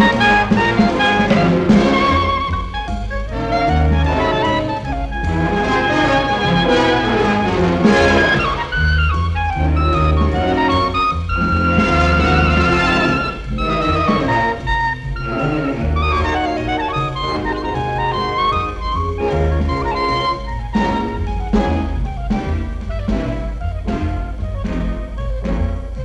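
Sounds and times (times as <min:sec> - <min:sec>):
clarinet melody: 0:00.0 - 0:26.0
jazz band with bass and drums: 0:00.0 - 0:26.0.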